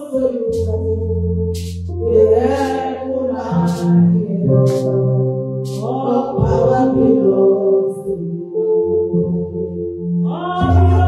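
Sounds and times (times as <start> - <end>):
woman singing into a microphone: 0.0 - 9.5, 10.1 - 11.0.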